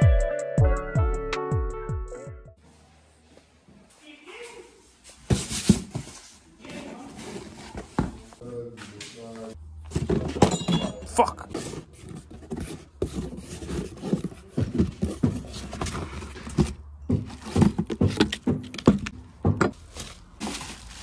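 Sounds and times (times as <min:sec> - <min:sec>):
cardboard box being unpacked: 0:11.5 - 0:18.9, 0:19.8 - 0:21.0
bubble wrap rustling: 0:19.8 - 0:21.0.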